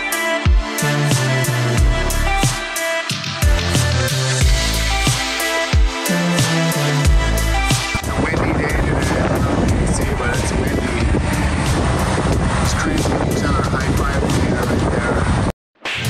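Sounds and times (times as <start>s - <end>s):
background music: 0.0s - 14.8s.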